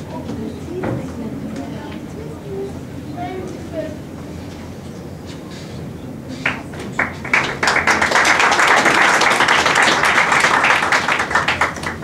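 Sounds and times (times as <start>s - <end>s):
audience applauding: 6.4s - 12.0s.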